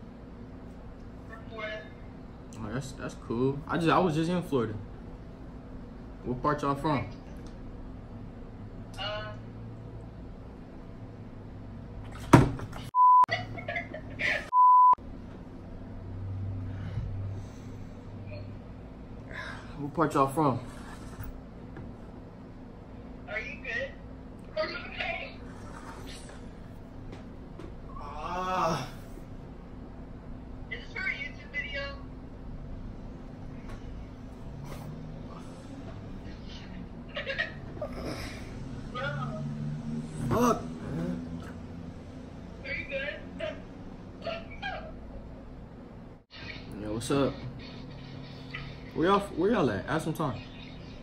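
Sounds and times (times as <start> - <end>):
low room hum: 0.0 - 51.0
person giggling: 13.3 - 14.5.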